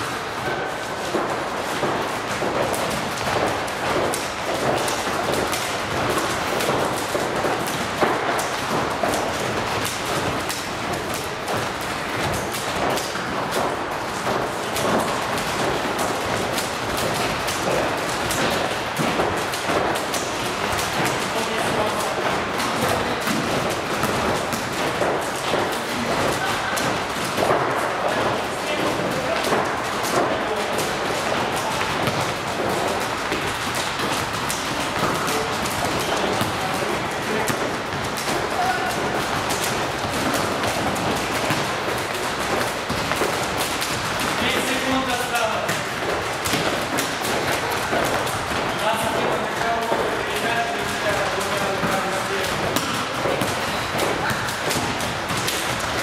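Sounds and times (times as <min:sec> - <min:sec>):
feet landing: 0:00.0 - 0:56.0
jump ropes hitting floor: 0:00.0 - 0:56.0
volleyball being struck: 0:00.4 - 0:56.0.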